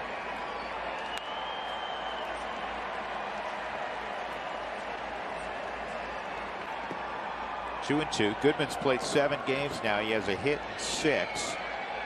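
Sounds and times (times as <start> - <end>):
stadium crowd murmur: 0.0 - 12.0.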